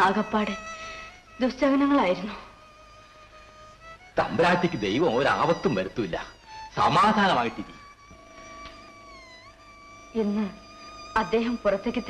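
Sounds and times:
soft sustained film score: 0:00.0 - 0:12.0.

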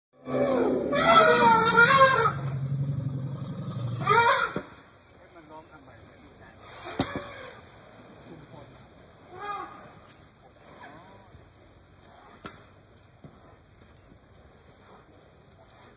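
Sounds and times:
low steady rumble: 0:00.5 - 0:06.6.

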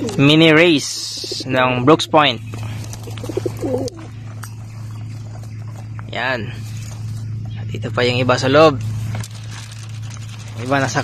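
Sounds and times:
pigeons stirring in a crate: 0:00.0 - 0:08.4, 0:09.0 - 0:11.0
steady low hum: 0:00.0 - 0:11.0.

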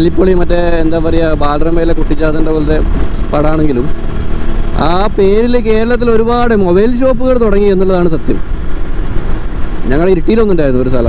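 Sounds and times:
motorcycle engine and wind rumble: 0:00.0 - 0:11.0.

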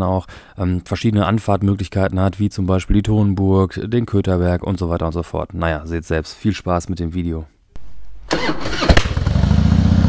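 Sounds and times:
engine bang: 0:07.8 - 0:10.0
motorcycle engine starting and idling: 0:08.2 - 0:10.0.

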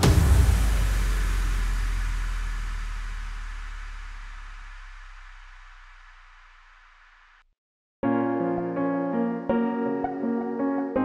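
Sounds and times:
low rumbling boom with hiss: 0:00.0 - 0:07.4.

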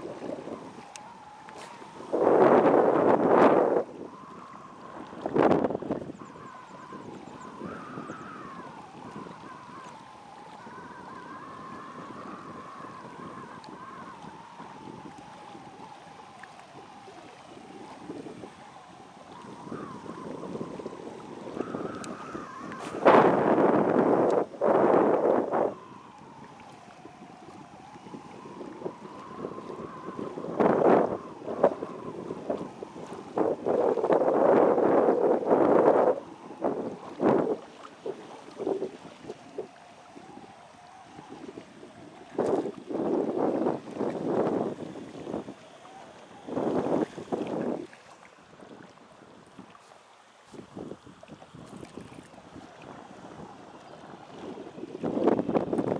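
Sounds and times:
faint wavering whistle: 0:00.0 - 0:49.9, 0:51.9 - 0:55.9
wind buffeting microphone: 0:00.0 - 0:49.9, 0:50.5 - 0:55.9.

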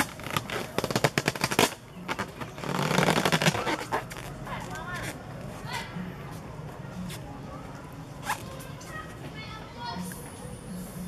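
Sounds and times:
rubber balloon squeaking: 0:00.0 - 0:04.4.

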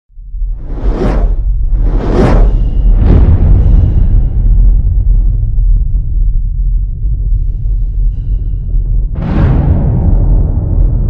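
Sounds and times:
steady deep rumble: 0:00.1 - 0:11.0
cinematic whoosh sweep: 0:00.5 - 0:04.4.

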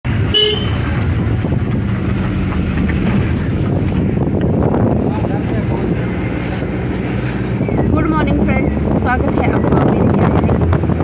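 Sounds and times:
road and engine rumble: 0:00.0 - 0:11.0
car horn beep: 0:00.3 - 0:00.9.

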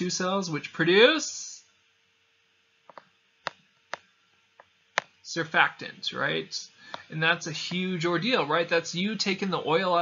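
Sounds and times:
faint steady hum: 0:00.0 - 0:10.0
stylus tapping on screen: 0:02.9 - 0:05.2, 0:06.9 - 0:07.9.

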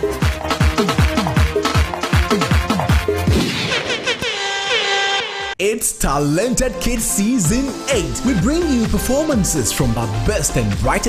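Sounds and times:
tv show intro music: 0:00.0 - 0:11.0
long horn-like note: 0:04.2 - 0:05.6.

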